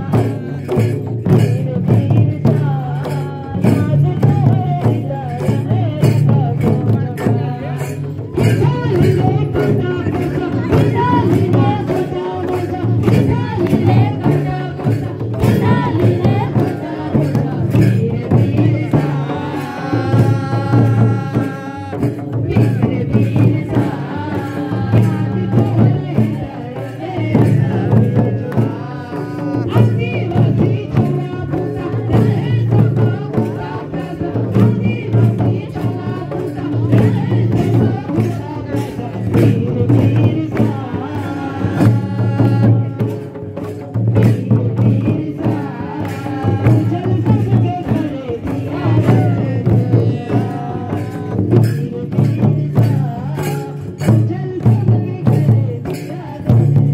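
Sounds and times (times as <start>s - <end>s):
barrel drum beating: 0.0s - 56.9s
woman singing folk song: 1.5s - 21.6s, 44.4s - 56.9s.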